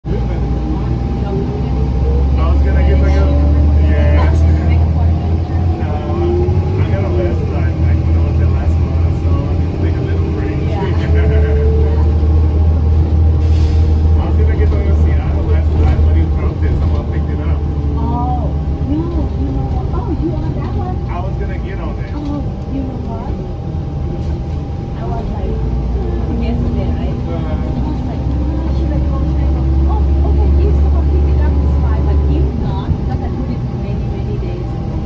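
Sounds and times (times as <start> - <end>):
bus engine drone: 0.0 - 35.0.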